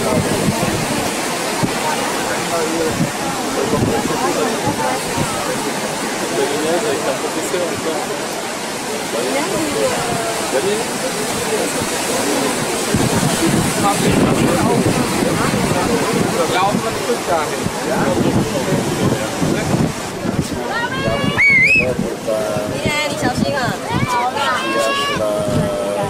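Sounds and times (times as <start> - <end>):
ocean surf breaking on rocks: 0.0 - 26.0
people talking: 0.0 - 26.0.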